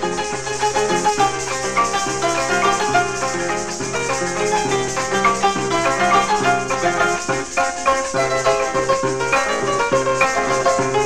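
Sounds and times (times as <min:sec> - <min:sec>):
harp plucking quick melody: 0:00.0 - 0:11.0
maracas shaking: 0:00.0 - 0:11.0.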